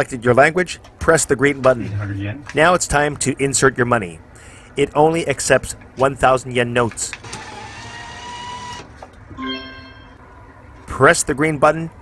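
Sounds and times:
bill acceptor motor whir: 7.2s - 8.9s.

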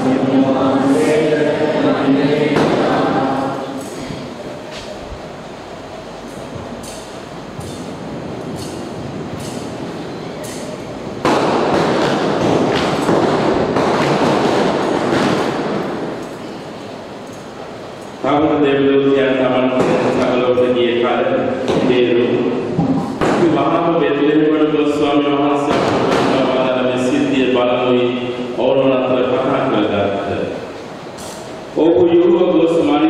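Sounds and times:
voice chanting: 0.0s - 4.4s
loud rush of noise: 0.0s - 33.0s.

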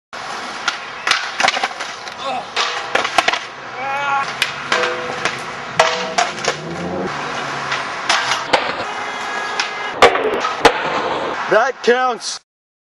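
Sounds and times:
voices calling out: 2.0s - 2.9s, 3.5s - 10.0s.

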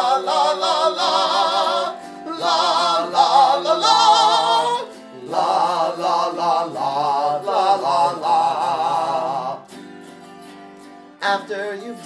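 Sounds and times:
man singing la la la: 0.0s - 9.7s, 11.2s - 12.0s
strummed autoharp: 0.0s - 12.0s.

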